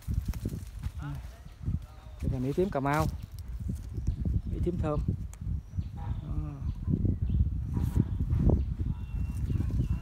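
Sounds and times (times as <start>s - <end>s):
microphone handling rumble and knocks: 0.0s - 10.0s.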